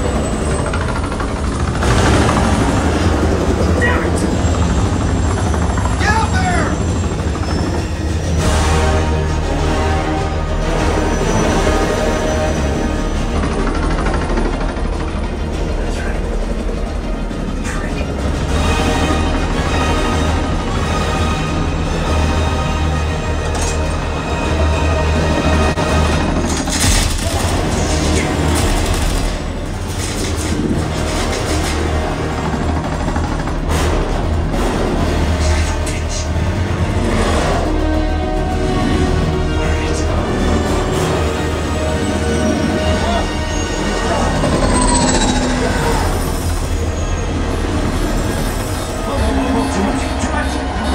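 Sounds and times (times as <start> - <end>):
action film music: 0.0 - 50.9
film dialogue: 0.0 - 50.9.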